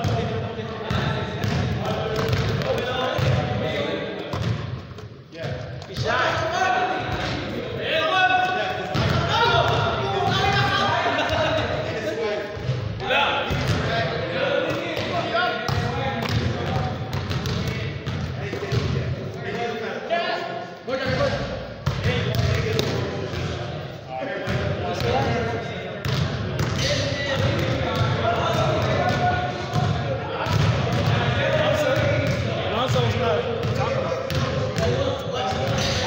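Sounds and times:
basketball bouncing on gym floor: 0.9s - 3.4s, 4.3s - 6.1s, 15.0s - 19.0s, 26.0s - 31.2s, 32.0s - 36.0s.

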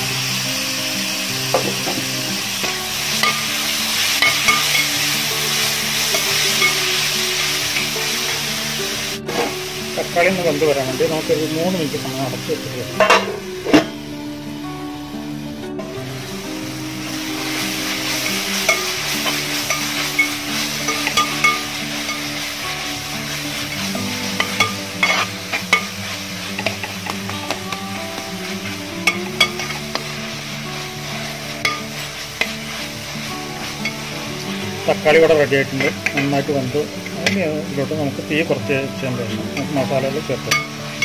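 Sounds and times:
onions sizzling in a pan: 0.0s - 41.0s
spatula scraping a pan: 17.4s - 27.3s, 28.4s - 36.5s.

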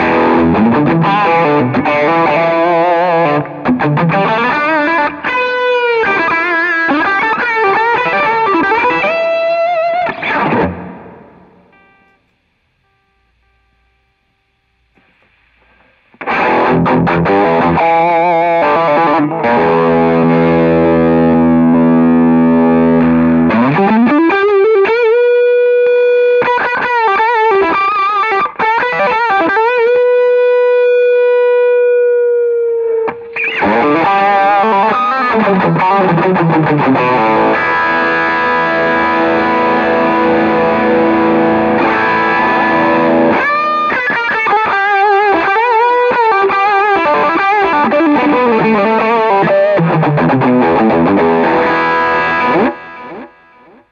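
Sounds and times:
distorted electric guitar: 0.0s - 53.9s.

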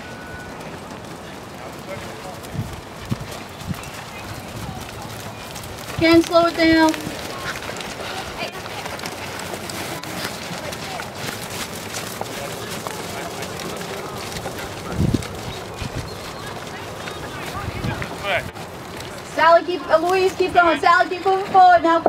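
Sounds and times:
hoofbeats on sand: 0.0s - 21.8s.

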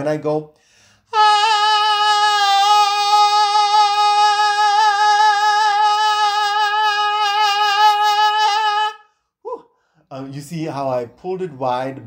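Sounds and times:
man singing a long high note: 1.1s - 9.1s.

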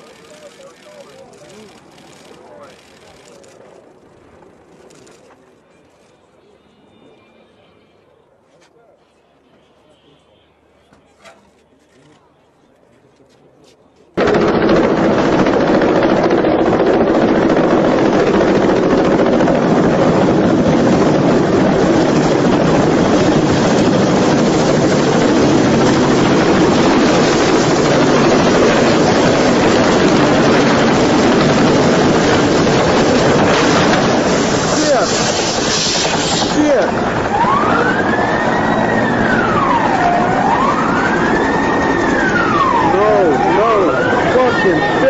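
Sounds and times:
helicopter roar: 0.0s - 6.0s, 14.2s - 45.0s.

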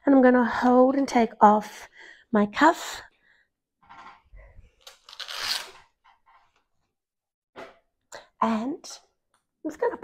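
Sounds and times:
velcro strap tearing open: 4.8s - 5.8s.

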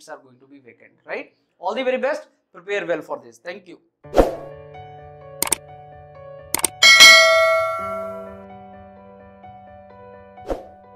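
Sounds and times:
mouse clicks: 6.6s - 6.8s
notification bell chime: 6.6s - 8.4s.

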